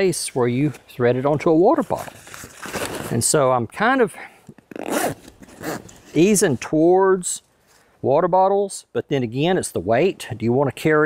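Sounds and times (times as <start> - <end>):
backpack zipper being pulled: 4.7 - 6.0.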